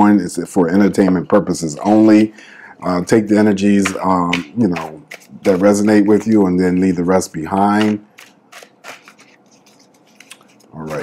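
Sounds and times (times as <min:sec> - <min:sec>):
cards being shuffled: 0:03.6 - 0:11.0.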